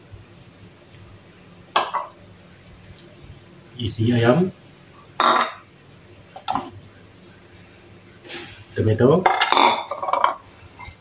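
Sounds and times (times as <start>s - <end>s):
metal kitchenware clatter: 8.9s - 11.0s.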